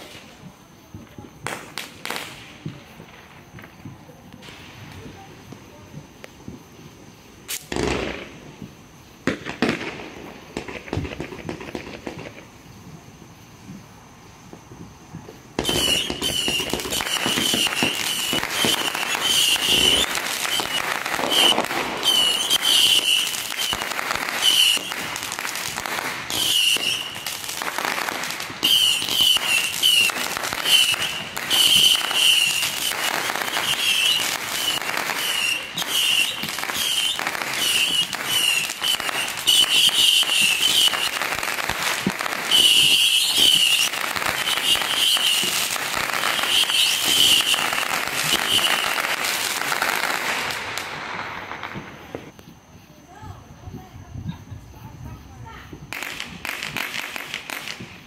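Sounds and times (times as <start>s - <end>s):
fireworks crackling and popping: 0.0s - 58.0s
fireworks shrill whistle: 14.8s - 52.4s.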